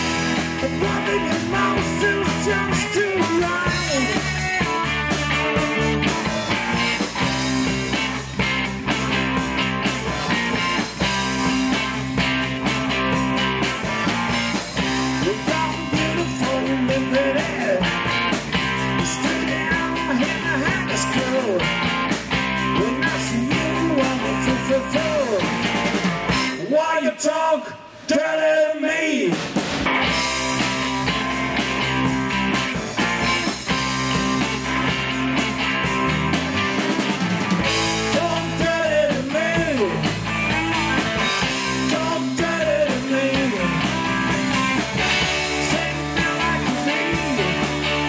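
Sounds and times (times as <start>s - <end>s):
live rock band playing: 0.0s - 26.8s, 29.2s - 48.0s.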